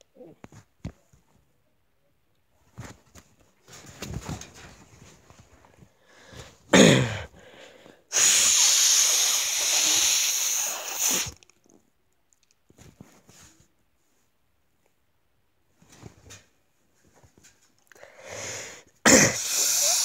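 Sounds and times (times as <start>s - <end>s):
person breathing: 5.9s - 11.3s, 17.9s - 20.0s
long hiss of breath: 7.4s - 11.4s, 18.0s - 20.0s.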